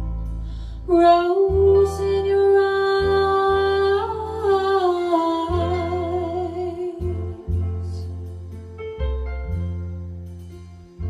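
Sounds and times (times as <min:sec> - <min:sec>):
soft accompaniment with low bass: 0:00.0 - 0:11.0.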